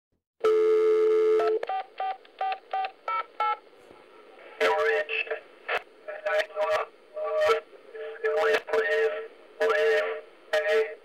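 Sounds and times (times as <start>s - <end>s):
steady telephone tone: 0.4s - 3.6s.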